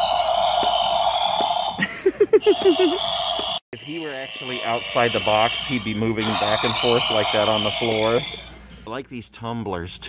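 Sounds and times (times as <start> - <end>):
animatronic mechanism running: 0.0 - 8.6
person speaking: 3.8 - 8.5.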